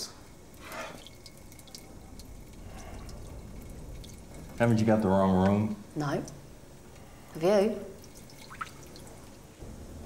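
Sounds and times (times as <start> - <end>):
faint water dripping: 0.0 - 9.9.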